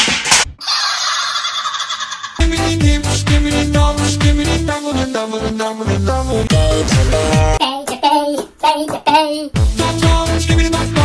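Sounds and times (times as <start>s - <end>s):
rhythmic beats: 2.4s - 11.0s.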